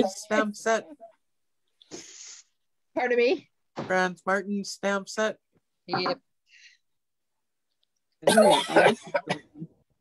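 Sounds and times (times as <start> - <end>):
person coughing or laughing: 8.2 - 9.7.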